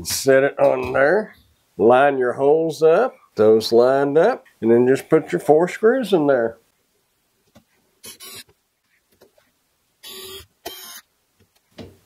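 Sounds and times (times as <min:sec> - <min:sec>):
screwdriver turning screws: 0:08.0 - 0:08.5, 0:10.0 - 0:11.0.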